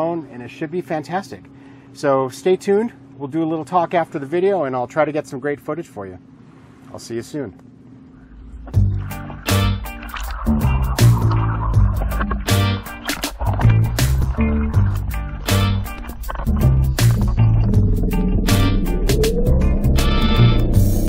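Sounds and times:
background music with driving beat: 0:08.7 - 0:21.0.

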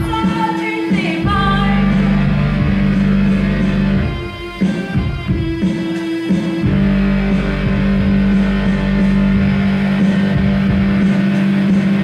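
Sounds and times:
electronic keyboard notes: 0:00.0 - 0:12.0.

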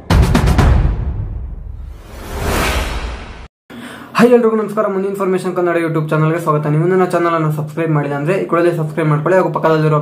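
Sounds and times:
low rumble: 0:01.0 - 0:03.5
whoosh sound effect: 0:01.4 - 0:03.5.

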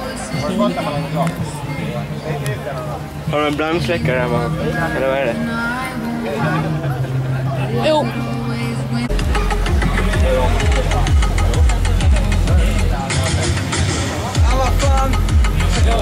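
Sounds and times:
bass-heavy electronic music: 0:00.0 - 0:16.0.

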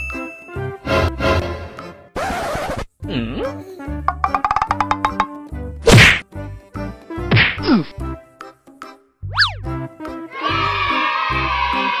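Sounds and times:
bouncy music with bass beat: 0:04.1 - 0:05.4
loud cartoon whack: 0:05.9 - 0:06.2, 0:07.3 - 0:07.7.

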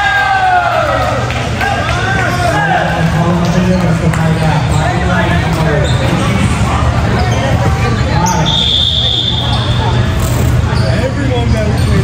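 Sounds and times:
crowd chattering and calling: 0:00.0 - 0:12.0
referee's whistle blast: 0:08.4 - 0:09.9.

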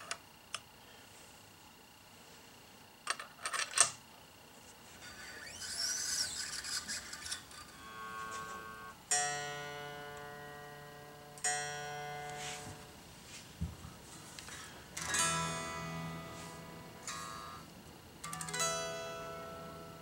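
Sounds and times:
scraping: 0:04.9 - 0:08.8
guitar notes plucked: 0:05.4 - 0:13.0, 0:14.4 - 0:20.0
metallic clicks of guitar hardware: 0:18.2 - 0:18.7.

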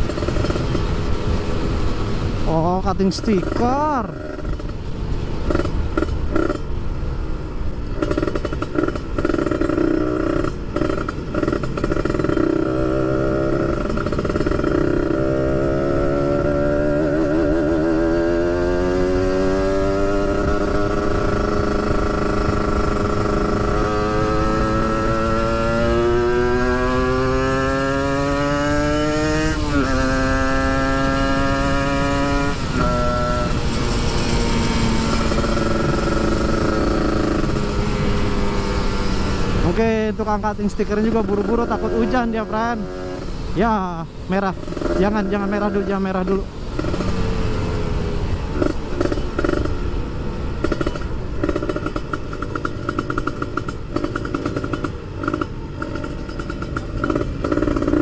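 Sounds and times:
motorcycle engine revving: 0:00.0 - 0:07.2, 0:07.9 - 0:58.0.

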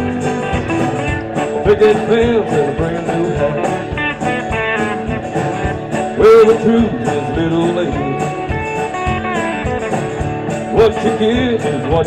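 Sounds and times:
live country-rock band: 0:00.0 - 0:12.0.

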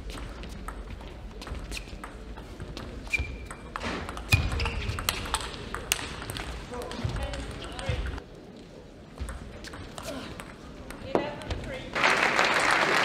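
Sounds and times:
crowd noise: 0:00.0 - 0:13.0
shoes squeaking on floor: 0:03.0 - 0:05.0.

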